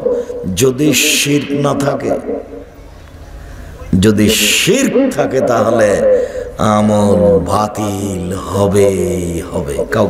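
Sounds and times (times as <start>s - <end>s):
man chanting sermon into microphone: 0.0s - 2.6s, 4.0s - 10.0s.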